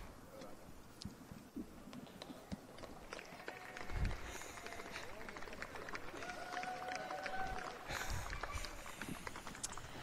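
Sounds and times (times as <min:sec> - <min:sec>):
small crowd clapping: 0:02.6 - 0:10.0.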